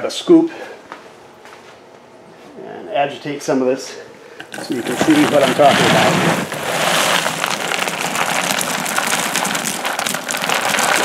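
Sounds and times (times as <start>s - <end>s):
caramel corn crackling in scoop: 4.4s - 11.0s.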